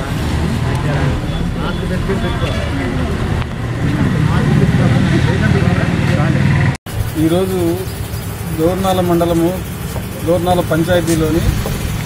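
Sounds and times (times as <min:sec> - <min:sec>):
crowd chatter: 0:00.0 - 0:11.6.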